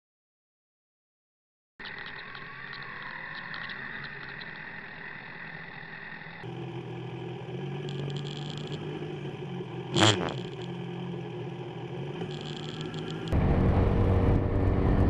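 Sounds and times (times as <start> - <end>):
motorcycle engine running at low revs: 6.4 - 15.0.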